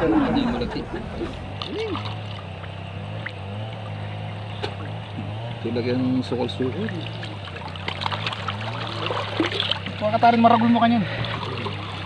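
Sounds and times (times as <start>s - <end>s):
water trickling and splashing: 1.3s - 12.0s.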